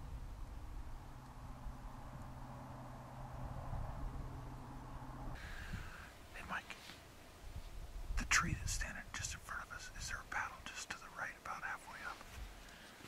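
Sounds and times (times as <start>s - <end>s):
man whispering: 5.9s - 6.9s, 8.2s - 12.4s.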